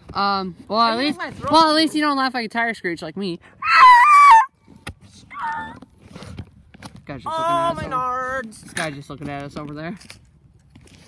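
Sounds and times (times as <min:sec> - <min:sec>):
boy's high-pitched squealing laugh: 0:03.6 - 0:04.5.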